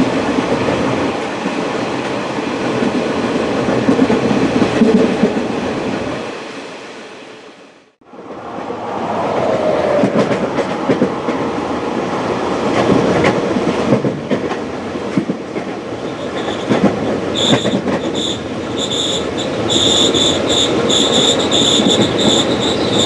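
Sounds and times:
train wheels rumbling on rails: 0:00.0 - 0:06.6, 0:08.6 - 0:23.0
high squeal: 0:17.3 - 0:23.0.

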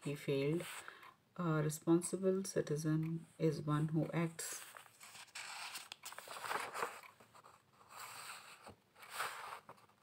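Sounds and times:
book pages turning: 0:04.6 - 0:10.0.

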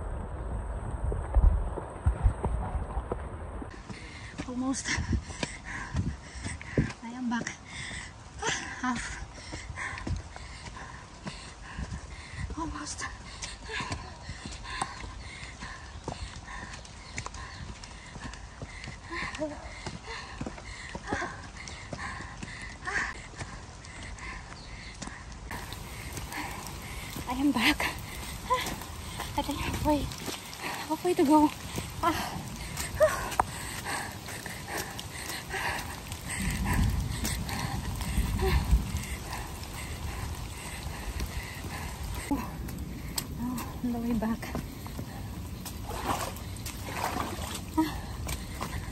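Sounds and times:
low rumble on microphone: 0:00.0 - 0:06.9, 0:31.5 - 0:48.9
footsteps on stone steps: 0:02.0 - 0:48.9.

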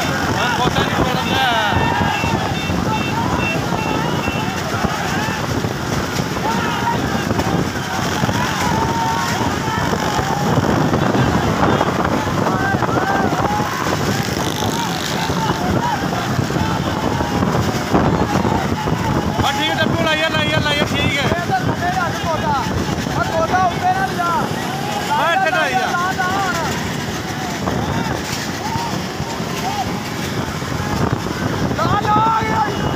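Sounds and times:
wind buffeting microphone: 0:00.0 - 0:25.2, 0:25.8 - 0:32.9
people shouting: 0:00.0 - 0:32.9
road and engine noise: 0:00.0 - 0:32.9.

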